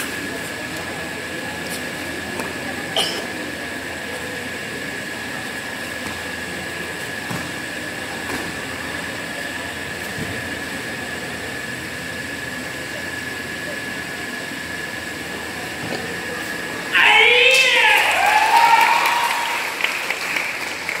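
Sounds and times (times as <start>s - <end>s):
loud drawn-out shout: 16.9s - 19.9s
people clapping: 17.5s - 21.0s.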